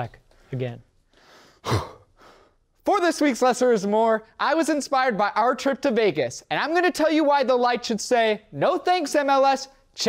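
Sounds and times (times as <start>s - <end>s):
soft breathing: 0.3s - 2.7s
man sighing: 1.2s - 2.6s.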